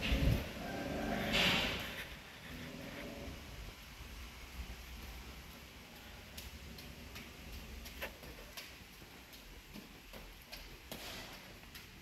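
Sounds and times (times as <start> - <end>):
faint footsteps on tiled stairs: 0.0 - 12.0.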